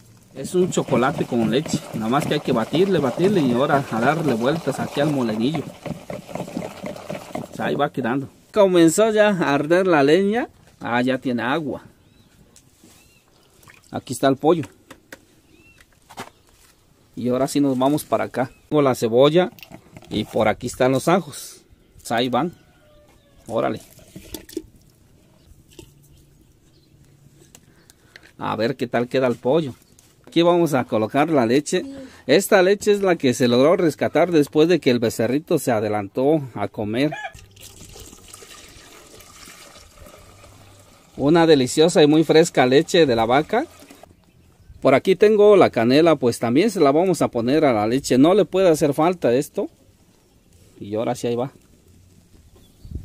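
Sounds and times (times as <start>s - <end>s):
milk pouring into pot: 0.4s - 7.6s, 37.6s - 44.1s
small splashes in water: 13.6s - 14.0s.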